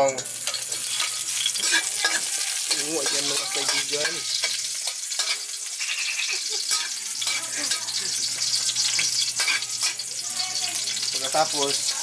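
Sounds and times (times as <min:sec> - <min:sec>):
garlic sizzling in hot oil: 0:00.0 - 0:12.0
metal spatula scraping a wok: 0:00.4 - 0:07.9, 0:08.8 - 0:10.1.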